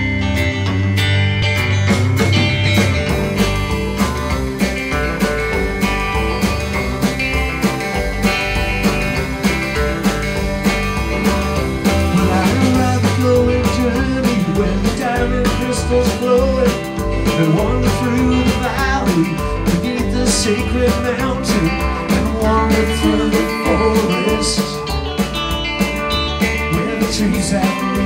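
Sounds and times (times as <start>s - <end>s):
electric guitars: 0.0s - 28.0s
steady drumbeat: 1.6s - 28.0s
man singing: 12.1s - 25.0s, 26.7s - 28.0s.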